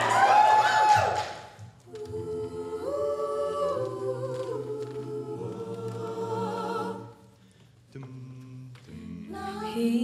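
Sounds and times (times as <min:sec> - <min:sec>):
a cappella group singing chord: 0:01.9 - 0:10.0.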